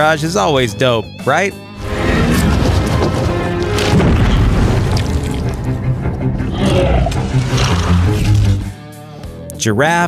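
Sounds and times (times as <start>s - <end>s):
dramatic film score: 0.8s - 9.5s
deep booming hits: 1.8s - 6.5s.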